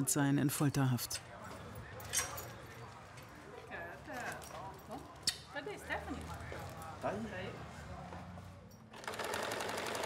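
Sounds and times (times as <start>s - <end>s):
sewing machine stitching: 9.0s - 10.0s.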